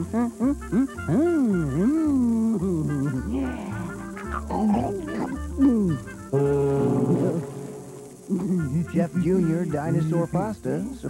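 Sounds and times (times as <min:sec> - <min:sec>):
wavering gliding voice-like sounds: 0:00.0 - 0:10.1
cartoon music with bass line: 0:00.0 - 0:11.0.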